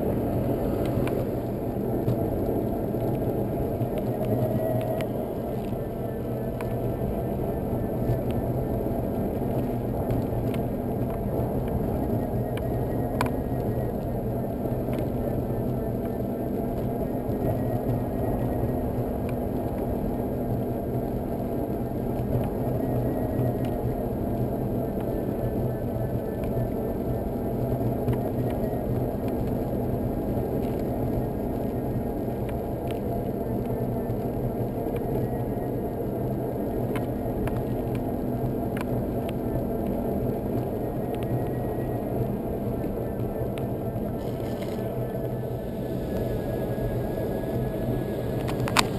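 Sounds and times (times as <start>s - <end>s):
tyre noise on wet road: 42.1s - 48.9s
small clicks: 43.5s - 45.4s.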